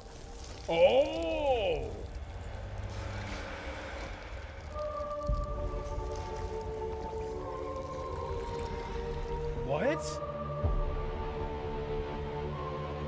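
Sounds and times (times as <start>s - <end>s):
low rumble: 0.0s - 9.7s.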